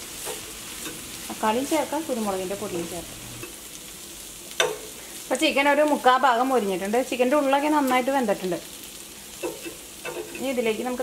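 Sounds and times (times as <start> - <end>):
chicken sizzling in oil: 0.0 - 11.0.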